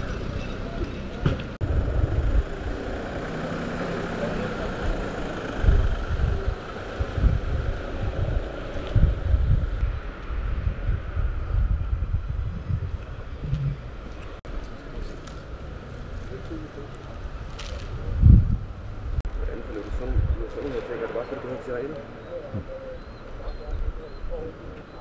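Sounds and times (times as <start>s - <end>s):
wind buffeting microphone: 0.0s - 3.8s, 4.6s - 14.6s, 15.8s - 24.7s.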